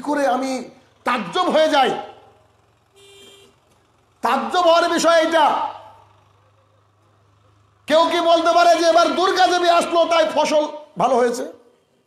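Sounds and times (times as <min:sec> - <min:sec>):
man speaking: 0:00.0 - 0:02.2, 0:04.2 - 0:05.9, 0:07.9 - 0:11.7.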